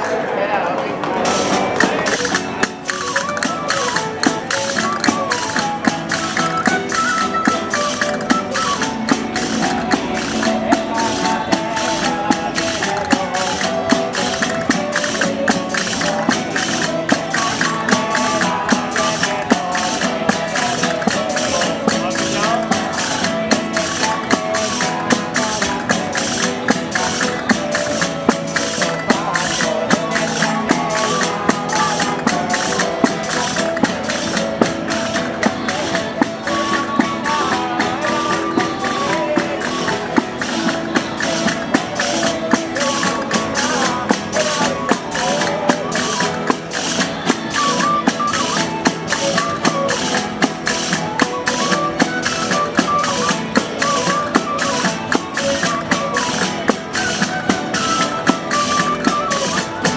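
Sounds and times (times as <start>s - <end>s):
folk band playing a carol: 0.0s - 59.9s.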